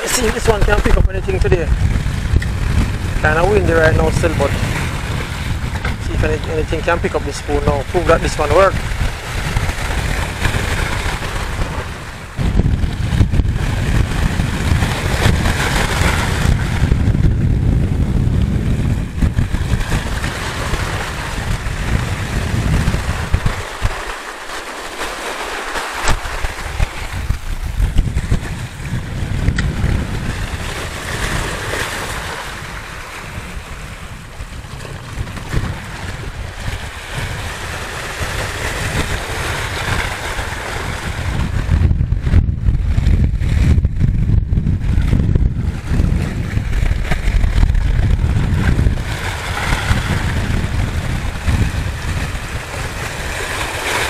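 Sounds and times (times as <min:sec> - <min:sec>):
waves breaking against rocks: 0:00.0 - 0:54.0
wind buffeting microphone: 0:00.0 - 0:54.0.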